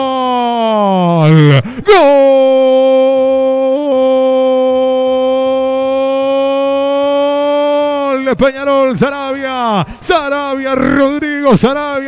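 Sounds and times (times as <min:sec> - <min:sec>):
man shouting long goal cry: 0:00.0 - 0:12.0.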